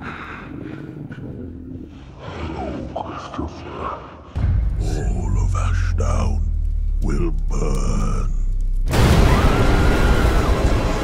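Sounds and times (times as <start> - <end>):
low steady rumble: 4.4 - 9.2
monster growling: 4.8 - 8.5.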